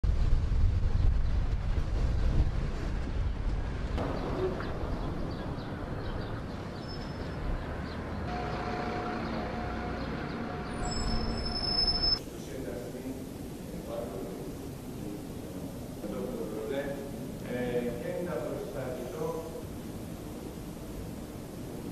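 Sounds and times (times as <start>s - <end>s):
steady low rumble: 0.0s - 6.8s
steady hum with held tones: 8.3s - 21.9s.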